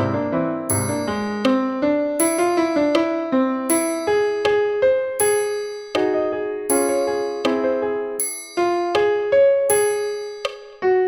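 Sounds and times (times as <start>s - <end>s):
bell-like piano melody: 0.0s - 11.0s.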